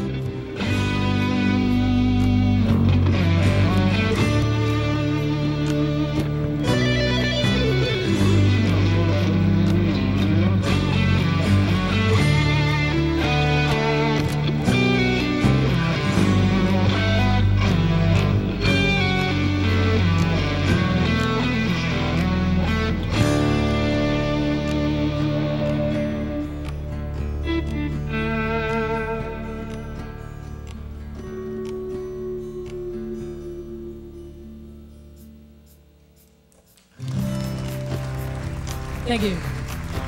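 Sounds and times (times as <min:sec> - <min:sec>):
bass guitar low notes: 0:00.0 - 0:35.6
electric guitar melody: 0:00.0 - 0:40.0.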